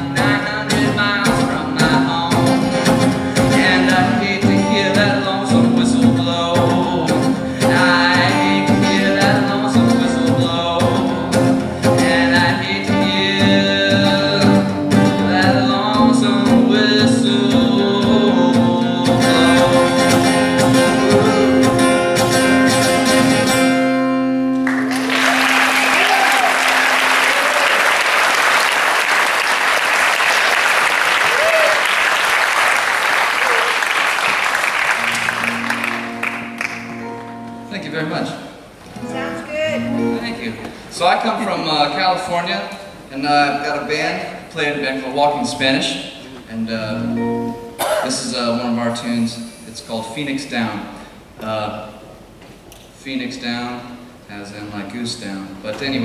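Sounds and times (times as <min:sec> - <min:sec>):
man singing: 0:00.0 - 0:22.7
strummed acoustic guitar: 0:00.0 - 0:26.0, 0:35.0 - 0:42.4
audience applause and cheers: 0:24.6 - 0:37.0.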